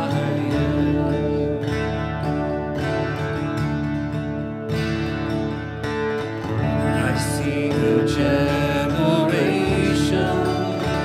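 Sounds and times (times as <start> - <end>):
woman singing: 0.0 - 2.2, 7.1 - 11.0
acoustic guitar: 0.0 - 11.0
electric bass: 0.0 - 11.0.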